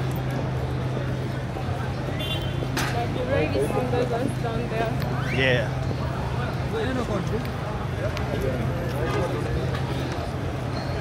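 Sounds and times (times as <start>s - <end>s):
low traffic hum: 0.0s - 11.0s
people talking: 2.8s - 11.0s.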